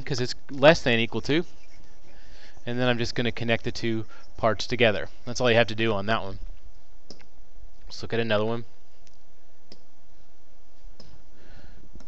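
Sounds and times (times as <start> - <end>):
computer mouse clicks: 9.0 - 9.9.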